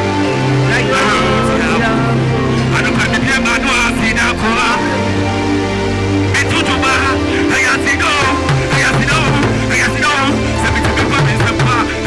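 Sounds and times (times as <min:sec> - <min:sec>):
sustained backing chords: 0:00.0 - 0:12.0
man singing: 0:00.6 - 0:05.0.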